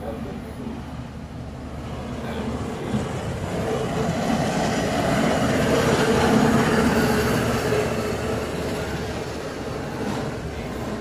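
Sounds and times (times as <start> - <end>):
truck rolling along rails: 0.0 - 11.0.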